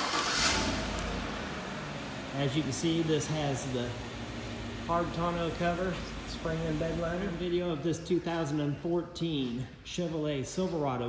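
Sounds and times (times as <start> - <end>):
truck engine starting and idling: 0.0 - 11.0.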